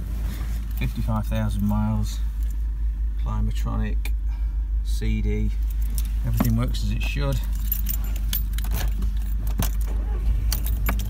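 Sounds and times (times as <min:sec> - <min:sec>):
car keys jangling: 0:05.6 - 0:11.0
key clicking in ignition: 0:05.6 - 0:11.0.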